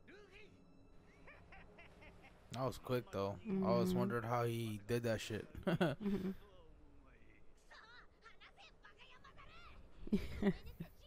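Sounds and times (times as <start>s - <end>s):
high-pitched cartoon voices: 3.5s - 4.1s
person laughing: 5.6s - 6.4s, 10.1s - 10.9s.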